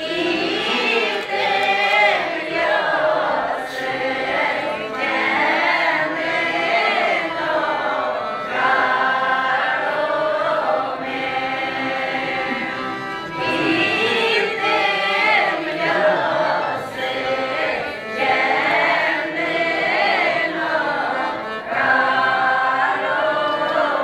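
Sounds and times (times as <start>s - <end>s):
accordion: 0.0s - 24.0s
women singing folk song together: 0.0s - 24.0s.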